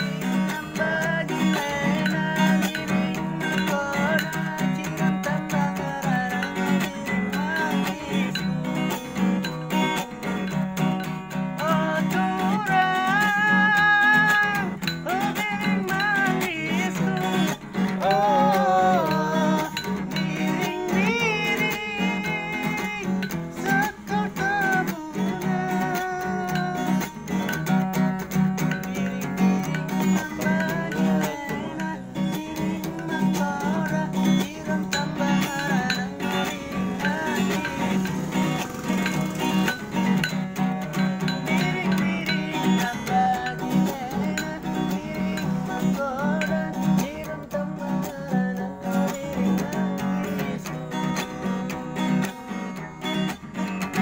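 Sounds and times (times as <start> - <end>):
acoustic guitar strumming: 0.0 - 54.0
man singing: 0.0 - 54.0.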